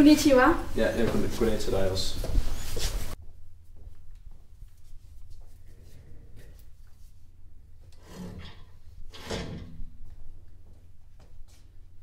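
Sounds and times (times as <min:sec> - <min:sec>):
chair scraping on floor: 0:07.9 - 0:10.0.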